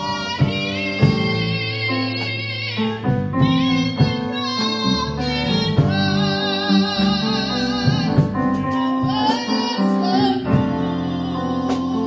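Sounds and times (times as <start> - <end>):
drum hits: 0.0 - 2.4, 7.7 - 9.5
church band with keyboard: 0.0 - 12.0
woman singing gospel: 0.0 - 12.0.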